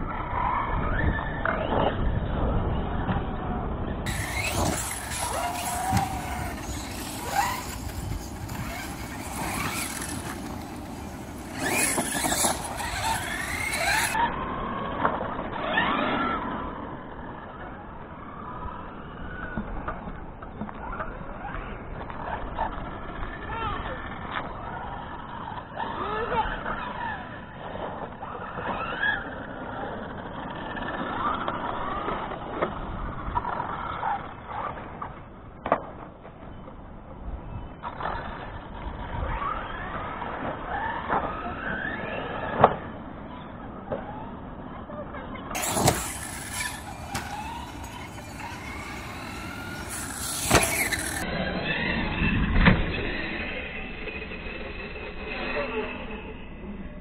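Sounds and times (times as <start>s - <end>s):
rc truck motor whine: 0.0s - 57.0s.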